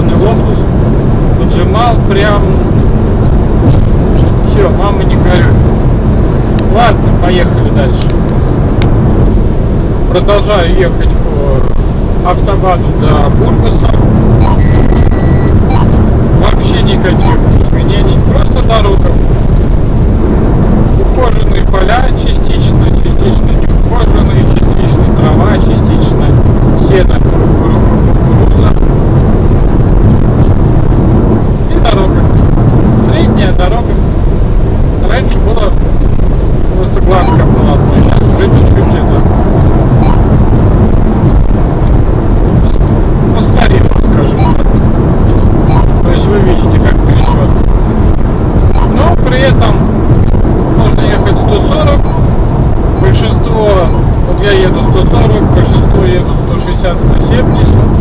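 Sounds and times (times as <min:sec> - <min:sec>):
car road and wind rumble: 0:00.0 - 0:58.0.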